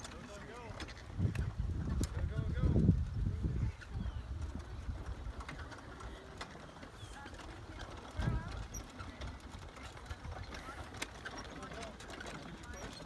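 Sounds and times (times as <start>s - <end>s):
distant voices: 0.0s - 13.0s.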